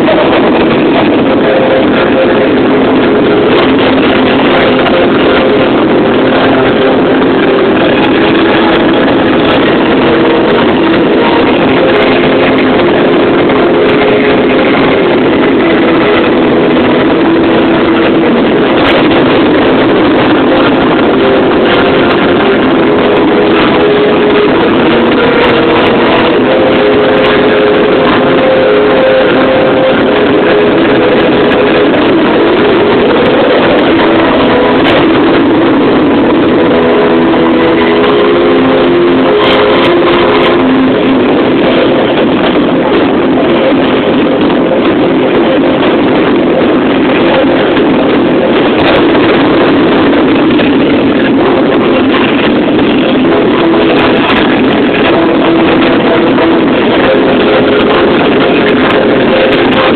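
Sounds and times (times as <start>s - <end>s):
distorted fireworks roar: 0.0s - 59.9s.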